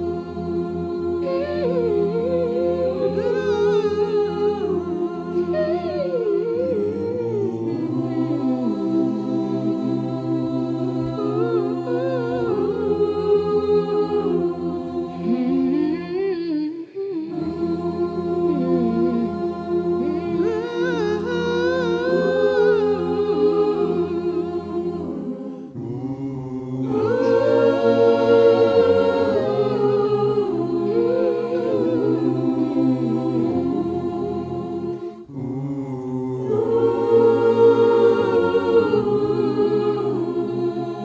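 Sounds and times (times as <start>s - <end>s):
choir holding sustained chords: 0.0s - 41.0s
solo voice singing: 0.0s - 41.0s.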